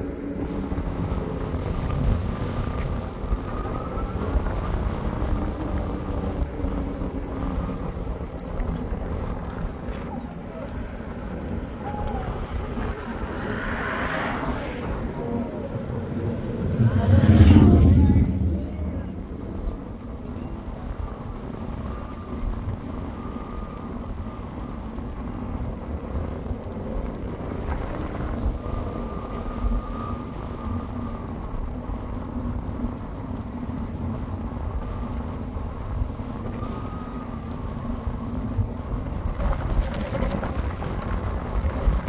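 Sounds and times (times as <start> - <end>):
tyre noise on asphalt: 0.0 - 42.0
wind rushing over microphone: 0.0 - 42.0.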